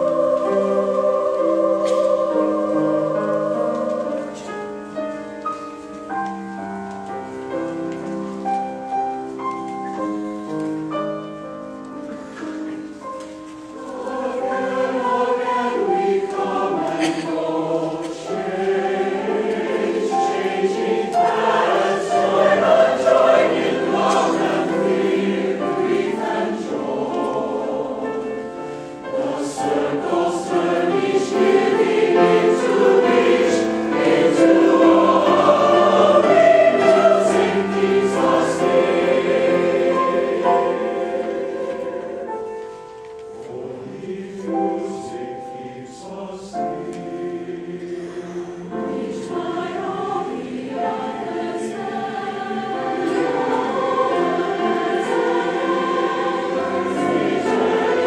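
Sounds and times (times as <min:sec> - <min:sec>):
mixed choir singing in harmony: 0:00.0 - 0:10.2, 0:11.1 - 0:58.0
piano accompaniment: 0:00.0 - 0:58.0.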